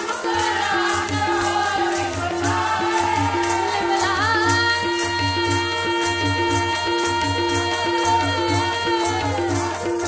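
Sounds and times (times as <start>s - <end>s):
harmonium melody: 0.0s - 10.0s
people singing together: 0.0s - 10.0s
tabla drumming: 0.0s - 10.0s.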